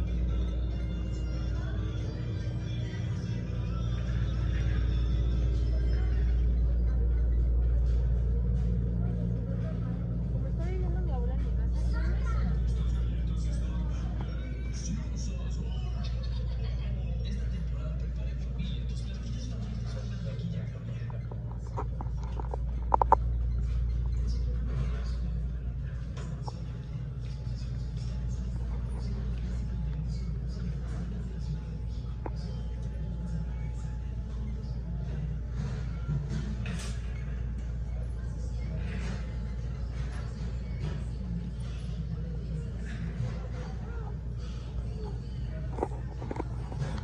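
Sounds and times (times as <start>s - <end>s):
background music: 0.0s - 16.1s
low background hum: 0.0s - 47.0s.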